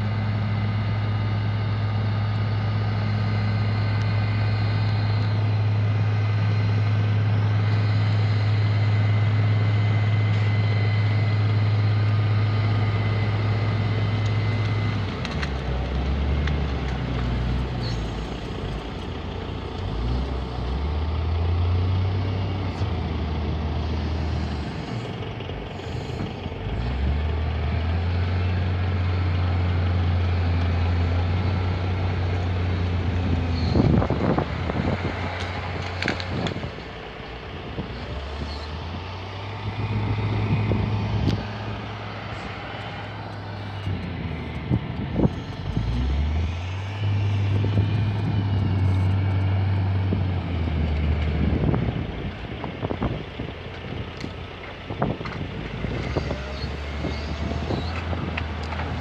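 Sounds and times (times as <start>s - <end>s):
diesel engine working hard: 0.0s - 59.0s.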